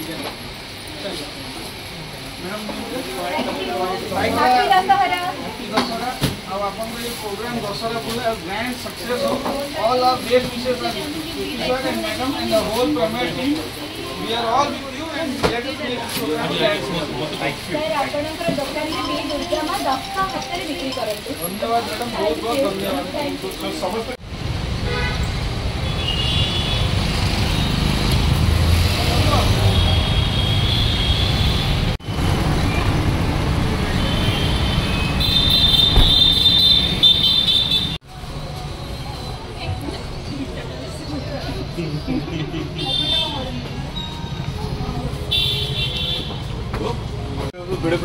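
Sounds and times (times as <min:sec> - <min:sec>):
rumble of traffic engines: 0:00.0 - 0:48.0
vehicle horn honking: 0:34.1 - 0:38.0.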